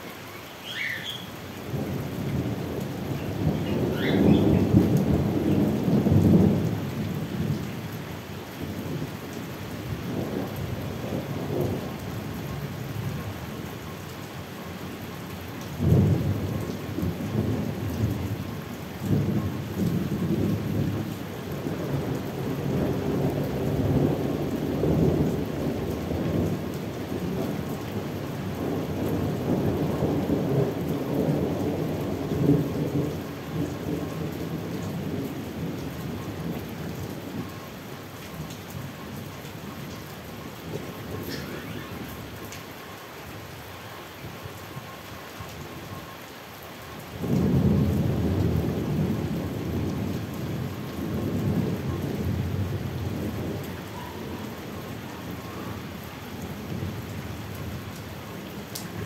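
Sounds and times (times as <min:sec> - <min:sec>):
steady rain: 0:00.0 - 0:59.0
thunder rumbling: 0:01.7 - 0:07.7, 0:15.8 - 0:37.5, 0:40.4 - 0:42.5, 0:47.2 - 0:58.0.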